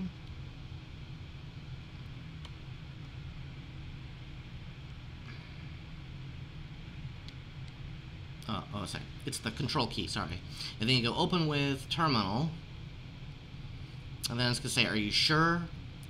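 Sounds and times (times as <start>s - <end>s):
low room tone hum: 0.0s - 16.0s.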